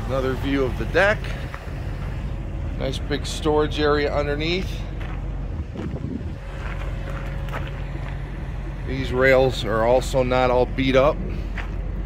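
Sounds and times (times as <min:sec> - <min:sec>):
low mechanical hum: 0:00.0 - 0:12.0
wind noise on microphone: 0:05.2 - 0:07.2.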